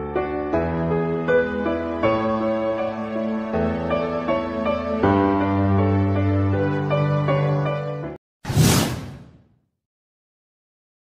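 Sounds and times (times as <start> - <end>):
background music: 0.0 - 8.2
whoosh sound effect: 8.4 - 9.5.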